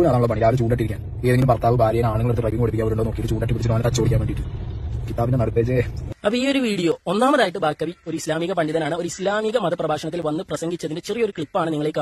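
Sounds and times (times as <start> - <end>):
man speaking: 0.0 - 4.4.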